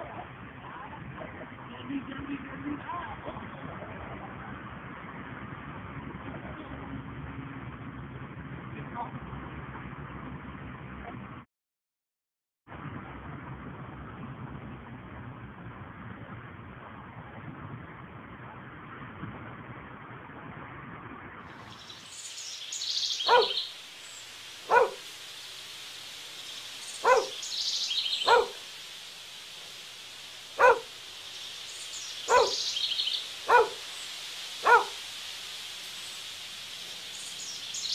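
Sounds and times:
dull outdoor hiss: 0:00.0 - 0:08.1, 0:21.5 - 0:37.9
birds chirping: 0:21.5 - 0:37.9
dog barking: 0:23.2 - 0:23.7, 0:24.6 - 0:25.1, 0:27.0 - 0:27.5, 0:28.1 - 0:28.7, 0:30.6 - 0:31.0, 0:32.2 - 0:33.9, 0:34.6 - 0:35.0.

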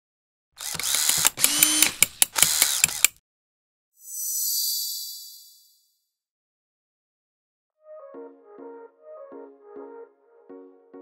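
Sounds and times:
mechanical ratcheting: 0:00.6 - 0:03.2.

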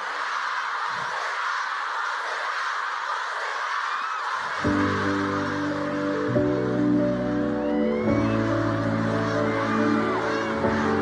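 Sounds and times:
concert crowd screaming and cheering: 0:00.0 - 0:11.0.

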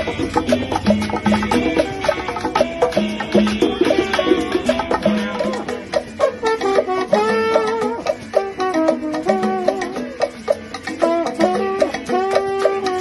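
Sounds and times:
maracas and hand percussion: 0:00.0 - 0:13.0
trombone melody: 0:00.0 - 0:13.0.

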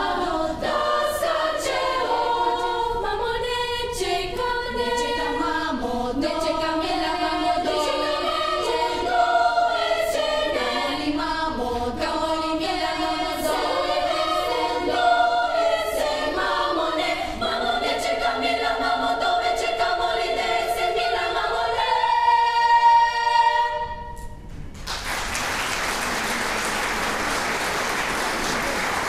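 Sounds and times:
girls' choir singing a cappella: 0:00.0 - 0:24.3.

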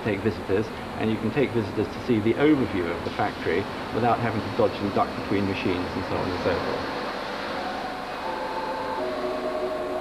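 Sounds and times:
machinery rushing noise: 0:02.5 - 0:10.0
machine whining tones: 0:05.1 - 0:10.0.

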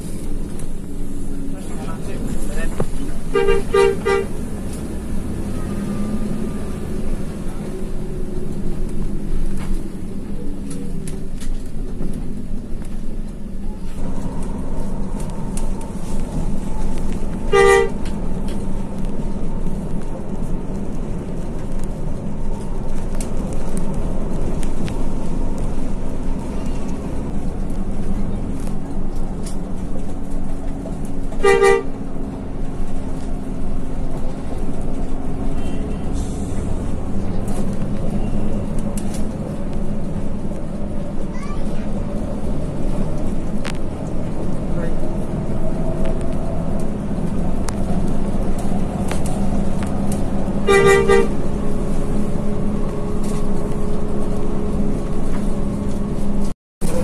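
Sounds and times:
bus engine drone: 0:00.0 - 0:57.0
road noise: 0:00.0 - 0:57.0
bus horn blasts: 0:03.3 - 0:04.5, 0:17.4 - 0:18.2, 0:31.4 - 0:32.0, 0:35.5 - 0:36.1, 0:50.5 - 0:51.6.

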